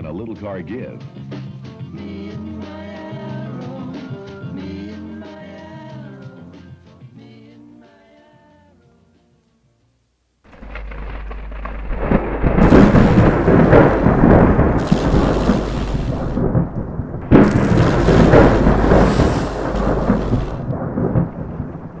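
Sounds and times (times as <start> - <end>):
sharp burst: 11.9 - 22.0
rumbling roar logo sound effect: 12.0 - 22.0.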